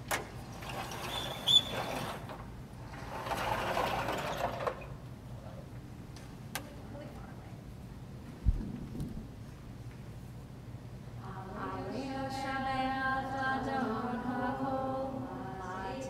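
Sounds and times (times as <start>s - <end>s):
high squeak: 0.8s - 2.3s.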